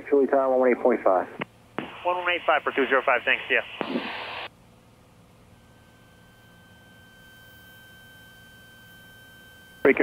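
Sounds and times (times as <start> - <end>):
faint steady whine: 0.0 - 10.0
faint radio hiss: 1.0 - 4.6, 5.6 - 10.0
radio static burst: 1.8 - 4.5.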